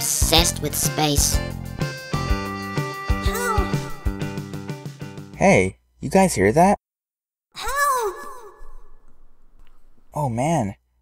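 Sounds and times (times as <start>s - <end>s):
distant high voice crying out: 3.2s - 4.1s.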